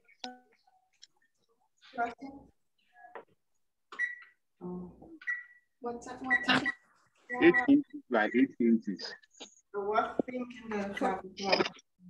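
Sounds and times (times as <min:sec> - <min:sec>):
voices over video call: 0:00.0 - 0:12.0.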